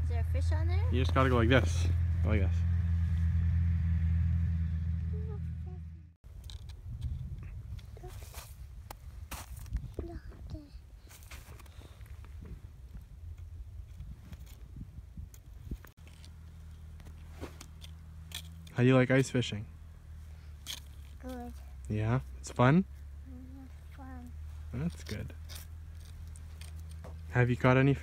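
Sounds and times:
engine idling hum: 0.0s - 6.6s.

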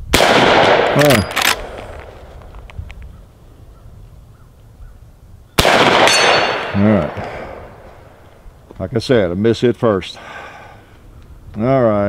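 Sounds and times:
rifle shot echoing: 0.1s - 2.3s, 5.6s - 8.2s.

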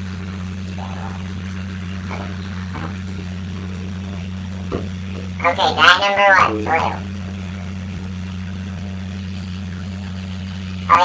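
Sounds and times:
steady low hum: 0.0s - 11.0s
water spraying from shower head: 0.0s - 11.0s.

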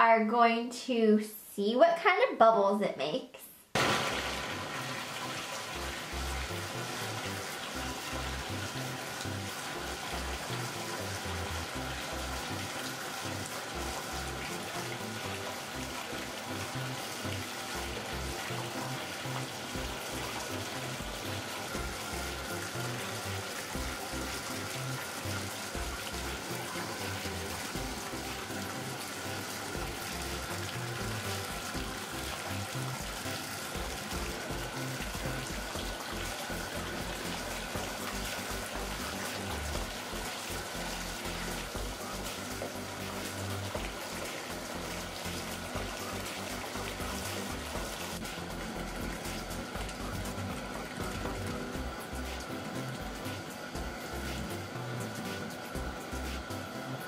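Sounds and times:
background music: 3.8s - 57.0s
bath tap running: 3.8s - 57.0s.

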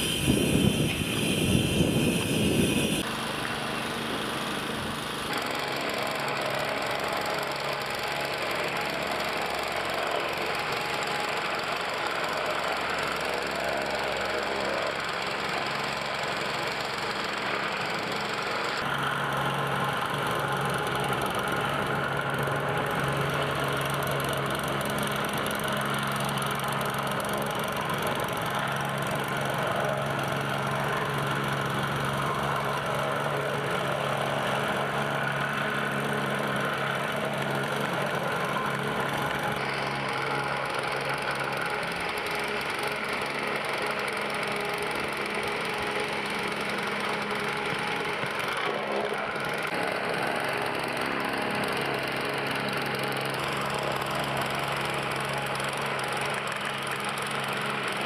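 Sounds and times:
plate compactor running: 0.0s - 58.0s.

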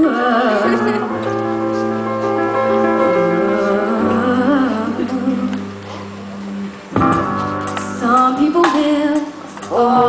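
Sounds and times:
sustained accompaniment chord: 0.6s - 7.0s.

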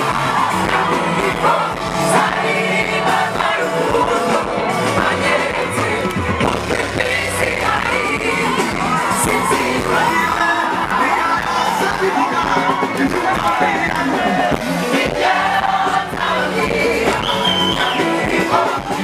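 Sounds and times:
crowd singing and cheering: 0.0s - 19.0s
lead singer amplified: 0.0s - 19.0s
live band music: 0.0s - 19.0s.

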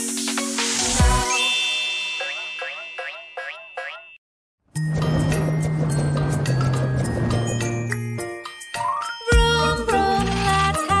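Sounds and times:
cartoon spring boing: 2.2s - 4.2s.

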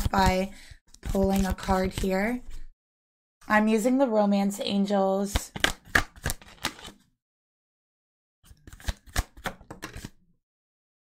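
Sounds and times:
cards being shuffled: 1.0s - 2.7s, 5.3s - 7.0s, 8.5s - 10.2s.

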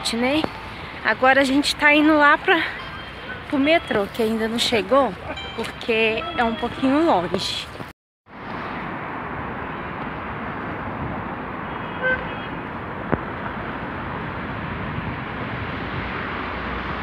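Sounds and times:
city street traffic: 0.0s - 17.0s
car horn toot: 5.3s - 7.0s, 11.8s - 12.6s.

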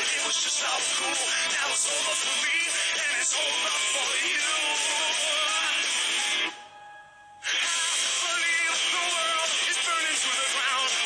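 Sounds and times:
pop music with singing: 0.0s - 6.7s, 7.4s - 11.0s.

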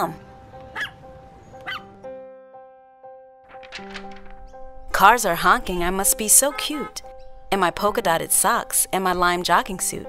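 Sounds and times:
small dog yipping: 0.7s - 1.0s, 1.6s - 1.8s
music of held notes: 3.6s - 10.0s.

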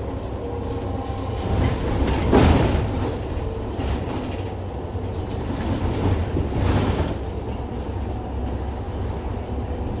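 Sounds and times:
bus cabin low rumble: 0.0s - 10.0s.

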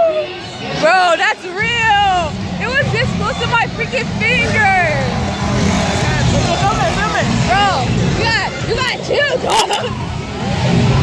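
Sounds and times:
high-pitched voices crying out: 9.0s - 10.0s.

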